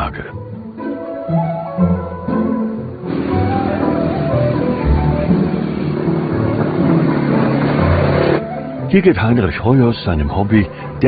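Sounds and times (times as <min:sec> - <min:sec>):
background music: 0:00.0 - 0:11.0
vehicle engine revving: 0:03.0 - 0:08.8.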